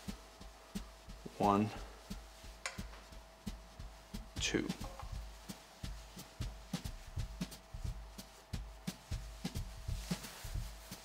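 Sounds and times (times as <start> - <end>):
fabric folding ticks and thumps: 0.0 - 11.0.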